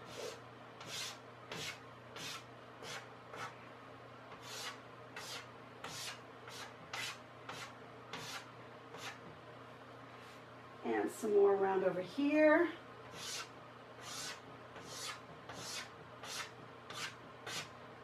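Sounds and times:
chalk scratching on chalkboard: 0.0 - 3.6, 4.3 - 9.3, 13.1 - 17.7.

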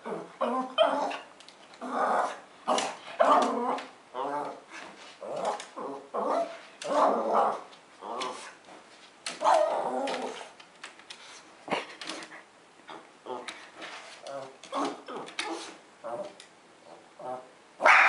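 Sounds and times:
dog growling: 0.0 - 8.6
small dog barking: 17.8 - 18.0.

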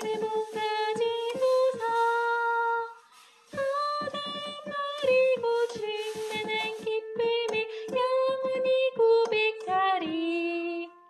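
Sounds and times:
woman singing a hymn: 0.0 - 11.0.

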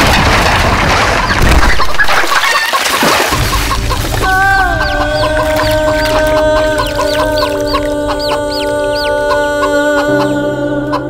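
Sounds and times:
chicks peeping: 1.2 - 11.0
hen clucking: 1.2 - 11.0
low bass note: 3.4 - 8.8.

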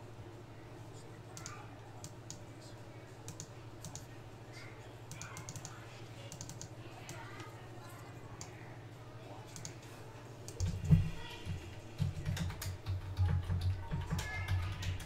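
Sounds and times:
low electrical hum: 0.0 - 15.0
keyboard typing: 3.3 - 4.1, 5.1 - 6.7, 9.5 - 9.8, 10.5 - 15.0.

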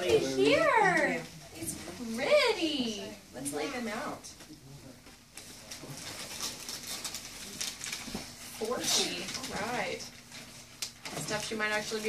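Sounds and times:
paper and gift box rustling: 5.3 - 12.0.

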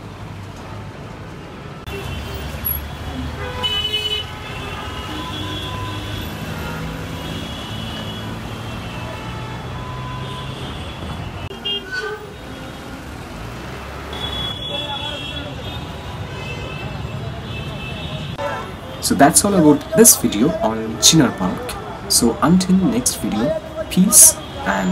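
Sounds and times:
traffic engines and tyres rumbling: 0.0 - 24.9
car horns tooting: 1.8 - 13.2, 14.0 - 24.9.

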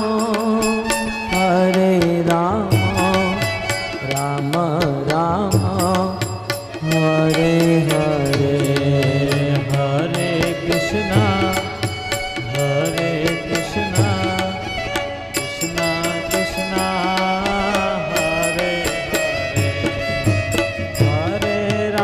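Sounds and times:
devotional music with sliding melody: 0.0 - 22.0.

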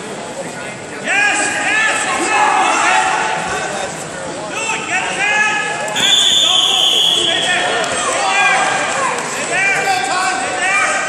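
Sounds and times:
referee's whistle blast: 6.0 - 7.7.

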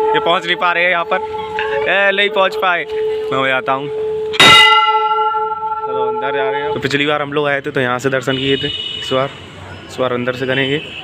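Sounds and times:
large brass bell ringing: 0.0 - 7.3.

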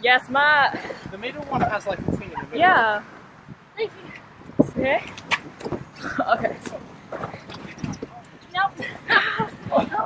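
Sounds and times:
outdoor crowd chatter: 0.0 - 10.0.

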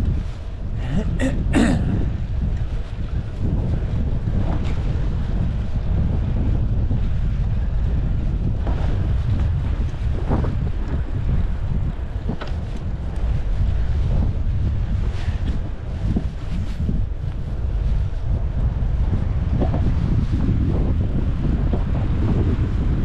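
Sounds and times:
wind noise on microphone: 0.0 - 23.0.

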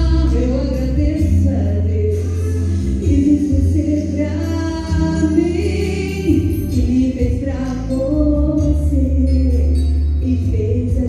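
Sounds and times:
amplified backing music: 0.0 - 11.0
woman singing into microphone: 0.0 - 11.0.

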